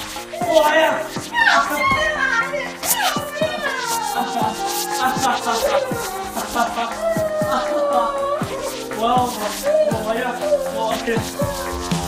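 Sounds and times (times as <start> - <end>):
background music: 0.0 - 12.0
excited high-pitched voices: 0.3 - 12.0.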